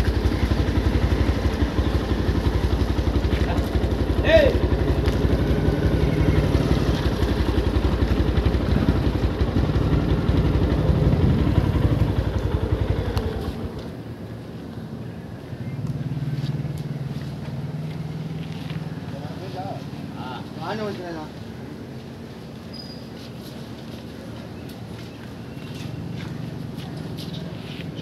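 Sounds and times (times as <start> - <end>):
small engine idling: 0.0 - 14.2
faint steady engine hum: 0.0 - 28.0.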